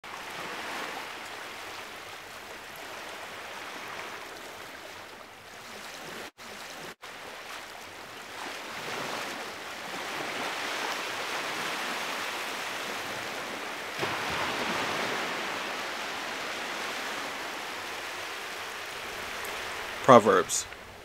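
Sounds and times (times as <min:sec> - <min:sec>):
rushing water: 0:00.0 - 0:21.0.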